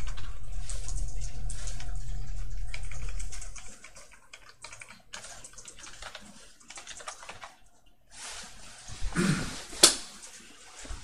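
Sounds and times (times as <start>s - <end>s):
low hum: 0.0s - 3.9s
computer keyboard typing: 0.0s - 7.9s.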